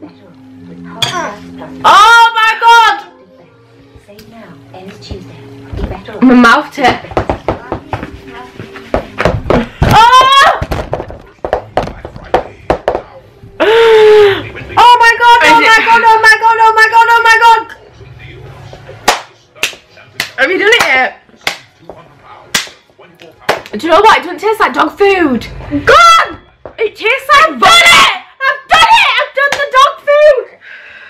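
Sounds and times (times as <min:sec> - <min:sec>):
sharp slaps: 0:19.0 - 0:21.7, 0:22.5 - 0:22.8, 0:23.5 - 0:23.8.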